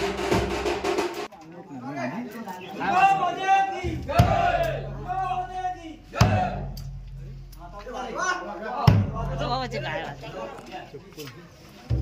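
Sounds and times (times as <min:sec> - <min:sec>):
men shouting in unison: 0:02.8 - 0:06.7.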